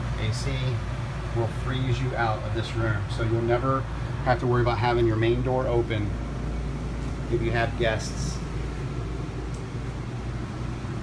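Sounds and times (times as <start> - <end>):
air conditioner hum: 0.0 - 11.0
air rushing through vents: 0.0 - 11.0.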